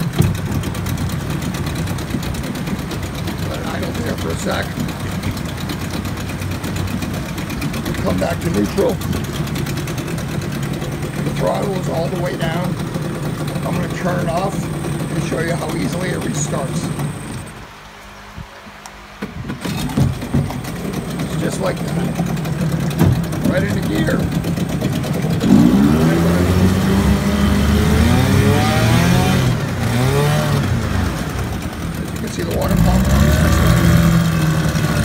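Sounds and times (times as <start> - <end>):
outboard motor pull-start: 0.0 - 17.7, 19.1 - 35.0
outboard motor idling: 0.0 - 35.0.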